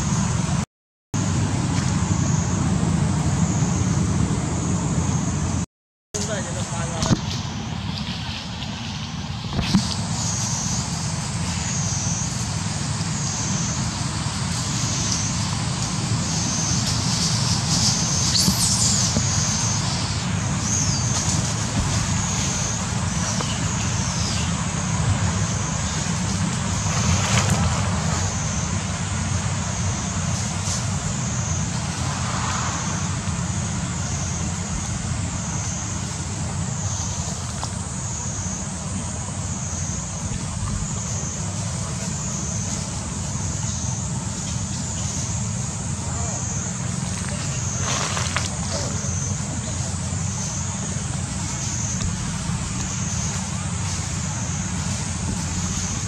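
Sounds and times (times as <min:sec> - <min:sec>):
steady low rumble: 0:01.2 - 0:05.6, 0:06.2 - 0:56.0
pulsing insect-like buzz: 0:06.3 - 0:56.0.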